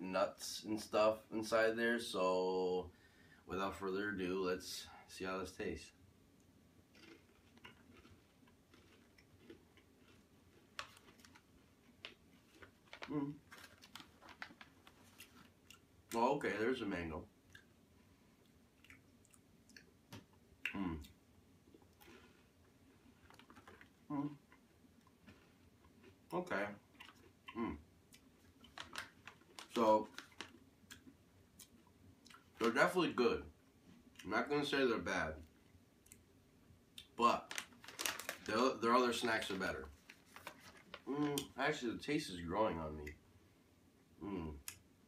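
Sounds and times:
person chewing crispy snack: 0:06.9 - 0:15.9, 0:20.6 - 0:32.7, 0:37.0 - 0:38.6
paper pouch handled: 0:12.6 - 0:15.2, 0:37.5 - 0:38.5, 0:40.0 - 0:41.1
man humming while tasting: 0:20.7 - 0:21.1, 0:44.2 - 0:44.7.

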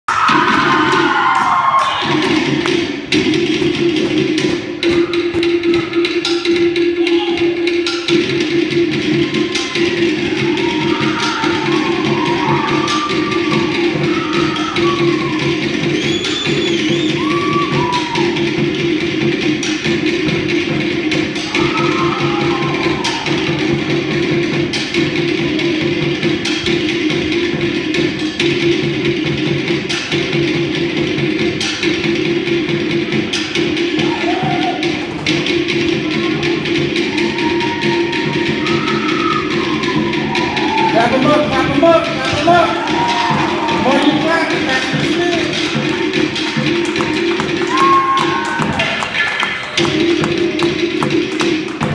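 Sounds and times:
drumming on wooden log drums: 0:00.1 - 0:51.9.

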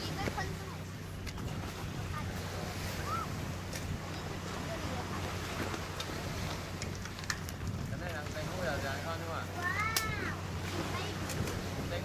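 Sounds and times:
low motor hum: 0:00.0 - 0:12.0.

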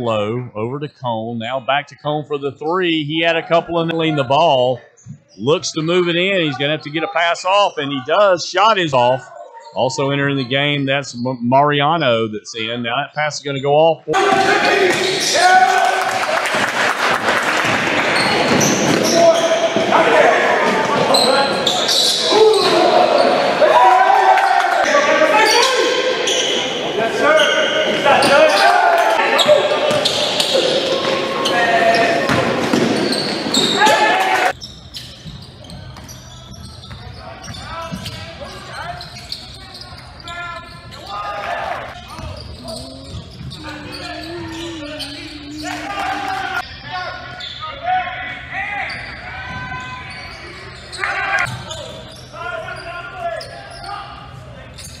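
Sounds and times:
people shouting and chattering: 0:00.0 - 0:55.0.

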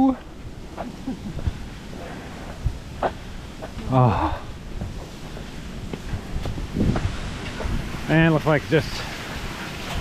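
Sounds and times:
bamboo rustling in wind: 0:00.0 - 0:10.0
wind buffeting microphone: 0:00.0 - 0:10.0.

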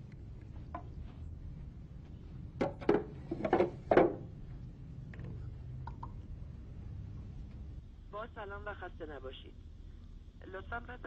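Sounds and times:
plastic jug knocking into juicer: 0:02.6 - 0:04.2.

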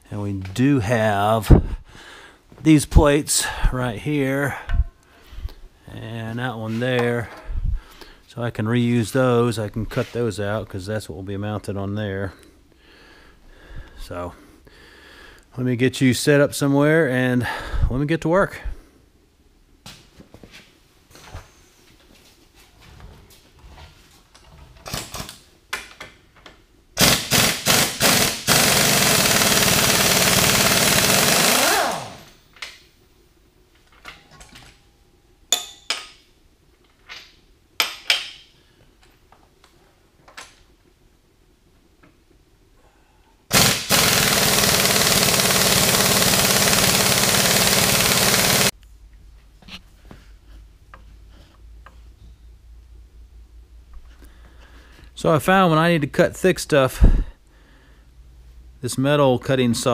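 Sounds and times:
impact wrench hammering: 0:27.0 - 0:32.3, 0:35.5 - 0:36.2, 0:43.5 - 0:48.7.

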